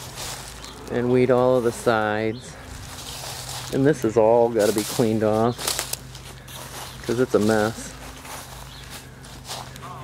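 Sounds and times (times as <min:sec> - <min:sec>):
footsteps on dry leaves: 0:00.0 - 0:10.0.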